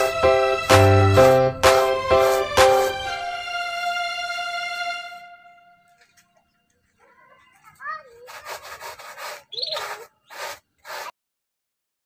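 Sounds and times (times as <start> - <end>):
rough rasping strokes: 7.5 - 11.2
wavering squeak-like tone: 9.5 - 10.1.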